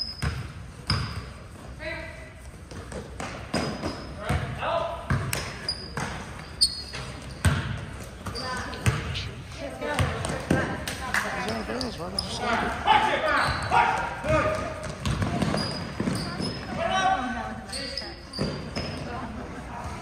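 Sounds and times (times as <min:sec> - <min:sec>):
basketball bouncing on court: 0:00.0 - 0:01.4, 0:02.7 - 0:09.2, 0:09.8 - 0:11.0, 0:13.4 - 0:17.0
sneakers squeaking on floor: 0:00.0 - 0:01.6, 0:02.6 - 0:10.6, 0:11.4 - 0:20.0.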